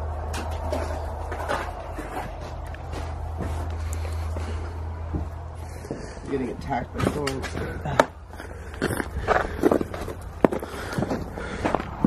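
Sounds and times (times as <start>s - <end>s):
steady low rumble: 0.0s - 12.0s
footsteps on wooden floor: 0.7s - 6.2s.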